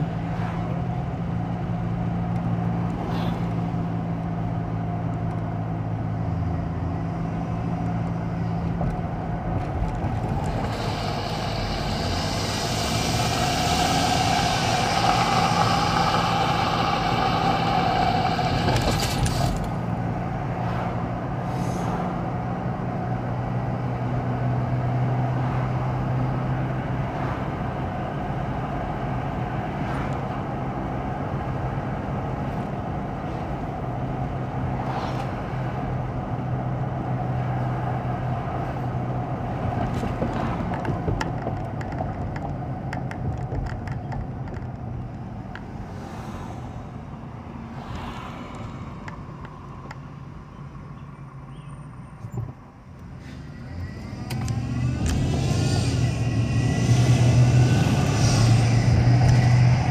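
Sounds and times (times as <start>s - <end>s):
engine and drivetrain hum: 0.0s - 59.9s
loud rushing noise: 9.7s - 22.2s, 53.2s - 59.9s.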